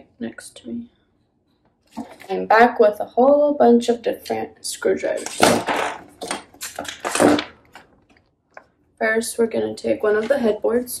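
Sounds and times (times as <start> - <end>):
handling rustling and clattering: 1.8 - 2.3, 5.1 - 8.3.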